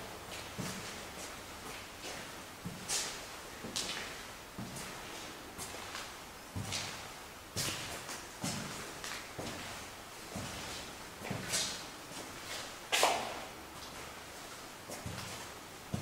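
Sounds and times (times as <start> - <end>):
slow footsteps on hard floor: 0.3 - 16.0.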